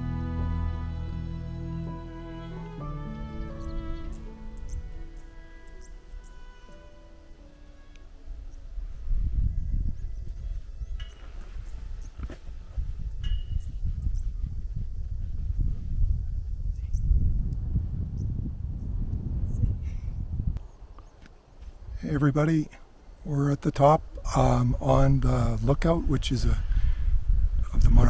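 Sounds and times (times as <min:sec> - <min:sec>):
wind buffeting microphone: 0:03.4 - 0:06.5, 0:08.2 - 0:22.2, 0:23.7 - 0:28.0.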